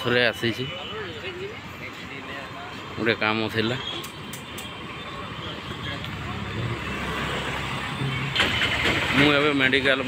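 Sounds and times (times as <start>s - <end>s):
auto-rickshaw engines: 0.0s - 10.0s
motorbike engines: 0.0s - 10.0s.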